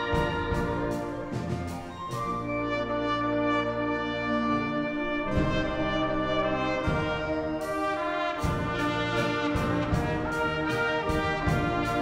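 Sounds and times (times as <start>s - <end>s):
wind band playing: 0.0s - 12.0s.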